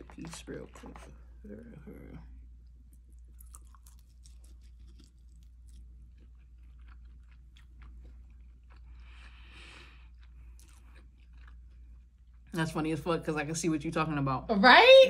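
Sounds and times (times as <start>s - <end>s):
person chewing chicken wing: 3.0s - 12.5s.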